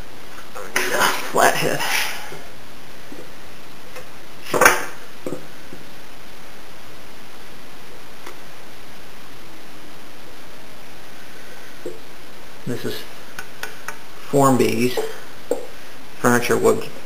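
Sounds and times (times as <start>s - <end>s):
steady hiss: 0.0s - 17.0s.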